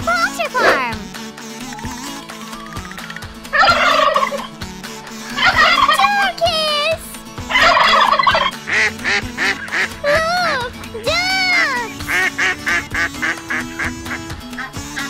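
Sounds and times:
children's background music: 0:00.0 - 0:15.0
turkey gobbling: 0:01.6 - 0:04.6, 0:05.2 - 0:06.4, 0:07.5 - 0:10.5
quick duck-like calls: 0:03.0 - 0:06.3, 0:07.4 - 0:10.7, 0:11.5 - 0:15.0.

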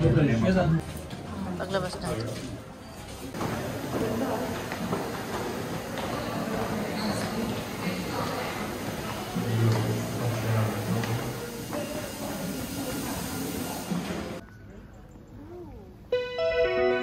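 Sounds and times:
hiss: 0:03.6 - 0:14.4.

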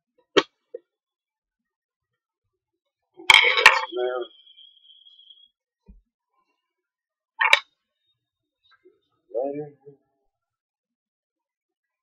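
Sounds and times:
thin high ringing tone: 0:03.3 - 0:05.5.

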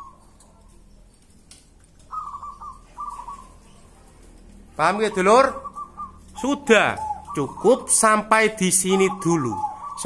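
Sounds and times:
doves cooing: 0:00.0 - 0:01.0, 0:01.8 - 0:10.0.

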